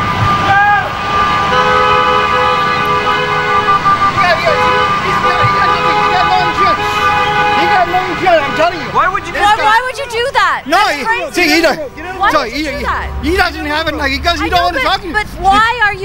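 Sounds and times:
car horn long blast: 0:00.0 - 0:10.8
voices: 0:00.3 - 0:16.0.

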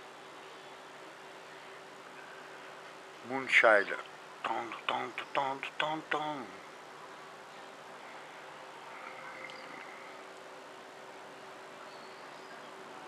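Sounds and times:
faint distant bird calls: 0:00.0 - 0:13.0
steady low hum: 0:00.0 - 0:13.0
light hiss: 0:06.5 - 0:12.7.

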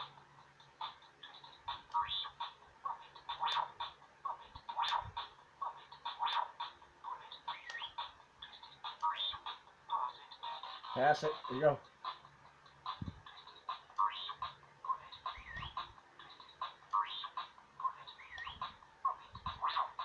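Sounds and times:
electronic robot beeps and chirps: 0:00.8 - 0:11.7, 0:12.9 - 0:20.0.

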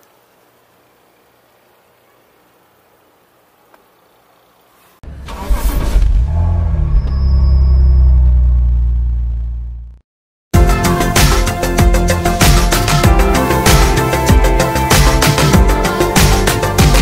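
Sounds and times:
faint outdoor background: 0:00.0 - 0:05.0
deep car engine: 0:05.0 - 0:10.0
sudden loud burst: 0:05.1 - 0:09.5.

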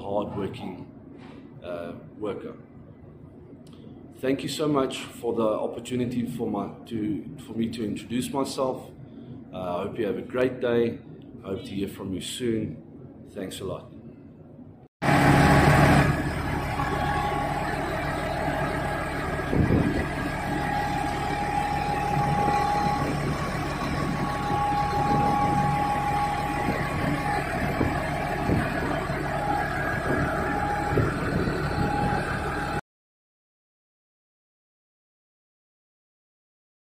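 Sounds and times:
high whine: 0:15.0 - 0:32.8
tractor diesel engine running: 0:15.0 - 0:32.8.

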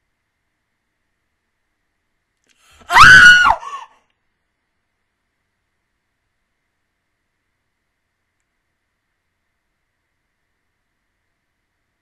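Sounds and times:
woman screaming: 0:02.8 - 0:03.9
weak cry: 0:02.8 - 0:04.0.

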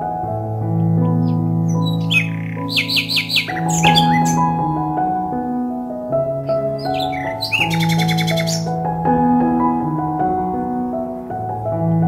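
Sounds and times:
background music with held notes: 0:00.0 - 0:12.0
songbird trilling: 0:01.0 - 0:04.6, 0:06.8 - 0:08.7.

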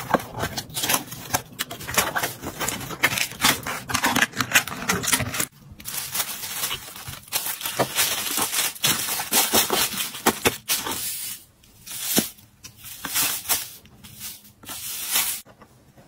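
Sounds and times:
shredded paper filler rustling: 0:00.0 - 0:15.5
tissue paper rustling: 0:01.9 - 0:15.5.

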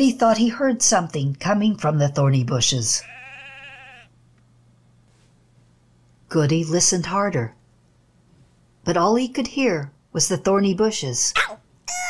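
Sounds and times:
sheep bleating: 0:03.0 - 0:04.1.

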